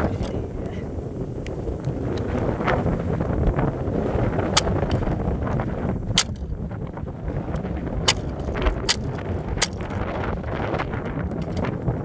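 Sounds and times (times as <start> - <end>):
wind noise on microphone: 0.0 - 12.0
model car cracking and snapping: 8.1 - 10.0.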